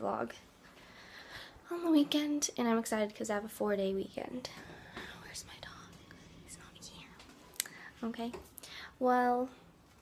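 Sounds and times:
person whispering: 4.5s - 8.1s.

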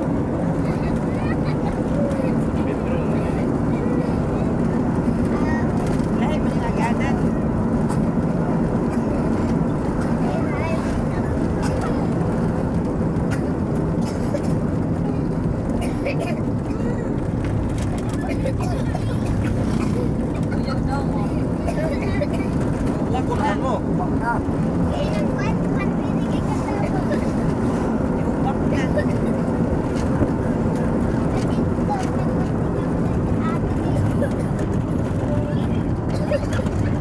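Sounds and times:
vehicle engine and road rumble: 0.0s - 37.0s
rushing air: 25.6s - 28.4s.

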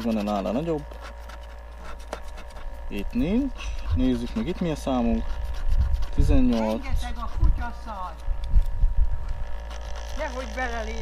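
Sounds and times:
fingernail scratching a lottery ticket: 0.0s - 8.4s, 9.3s - 11.0s.

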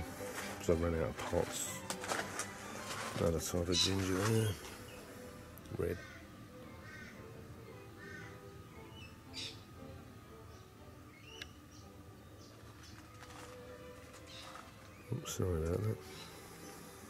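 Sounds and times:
birds chirping and whistling: 8.0s - 9.7s, 10.5s - 13.1s, 14.2s - 17.0s.

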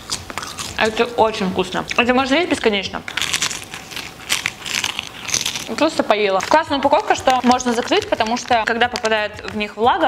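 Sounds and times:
seaweed snack crunching: 0.0s - 1.0s, 3.0s - 9.2s.

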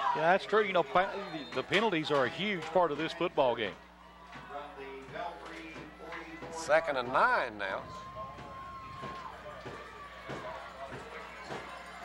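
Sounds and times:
stadium crowd: 0.0s - 12.0s
distant voices: 0.2s - 12.0s.

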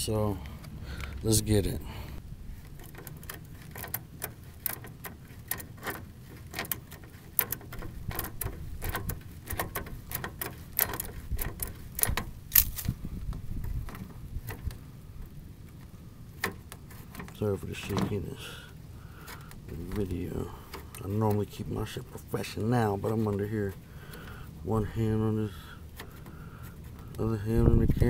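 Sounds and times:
low rumbling handling noise: 0.0s - 28.0s.

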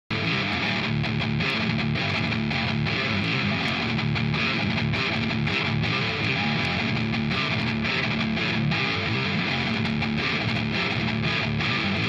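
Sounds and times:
electric guitar riff: 0.1s - 12.0s.

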